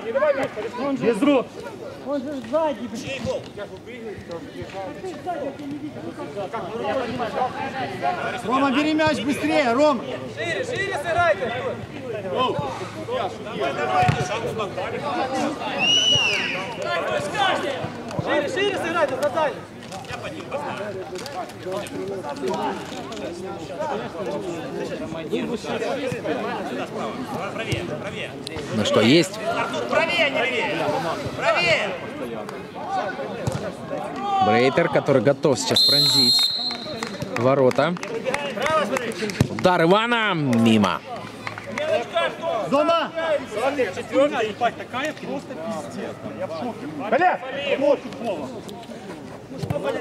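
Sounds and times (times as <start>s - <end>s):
men talking and calling out: 0.0s - 50.0s.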